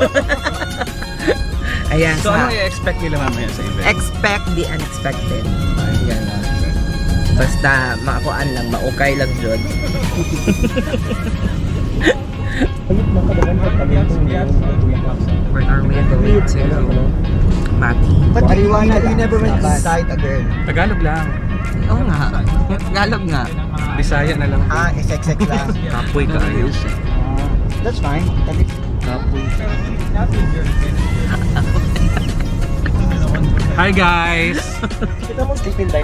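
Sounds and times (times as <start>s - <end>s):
engine and road noise: 0.0s - 36.0s
music: 0.0s - 36.0s
voices chattering: 0.0s - 36.0s.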